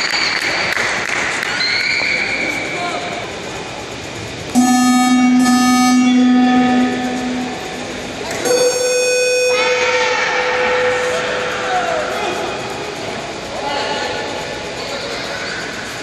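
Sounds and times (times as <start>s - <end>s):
horn blasts: 4.5s - 13.4s.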